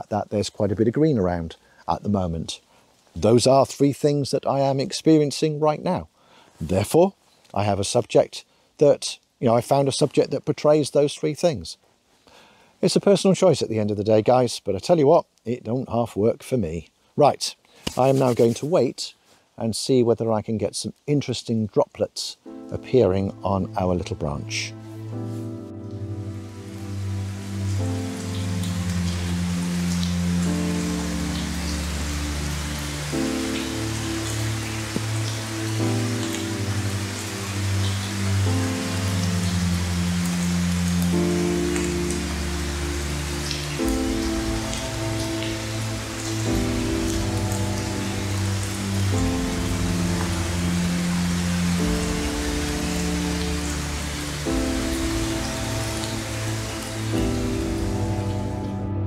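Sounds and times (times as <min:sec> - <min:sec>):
heavy rain on leaves: 0:17.7 - 0:19.4, 0:23.3 - 0:59.0
background music of sustained chords: 0:22.4 - 0:59.0.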